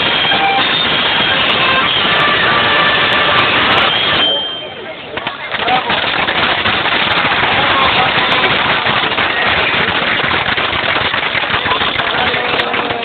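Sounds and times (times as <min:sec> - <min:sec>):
crowd applauding: 0:00.0 - 0:13.0.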